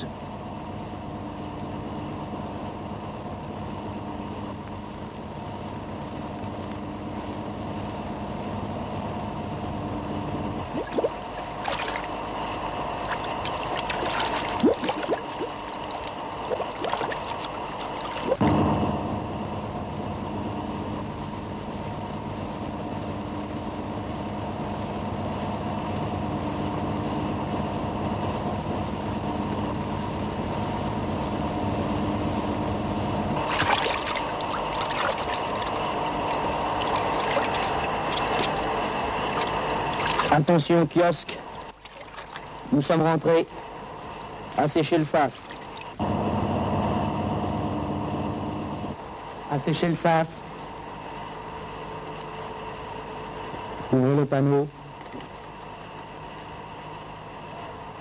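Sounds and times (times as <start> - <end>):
steady low hum: 0.0 - 58.0
water gurgling and bubbling: 10.6 - 12.2, 12.9 - 18.5, 33.4 - 40.5.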